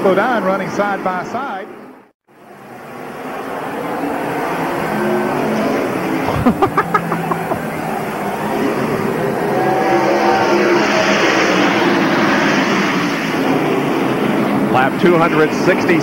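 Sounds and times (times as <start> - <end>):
race car engines at full throttle: 2.4 - 16.0.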